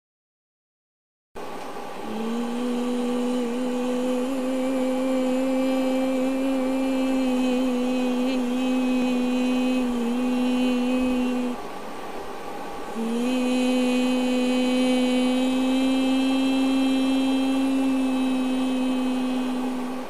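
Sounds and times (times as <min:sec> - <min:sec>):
person humming steady note: 0:02.0 - 0:11.6, 0:12.9 - 0:20.0.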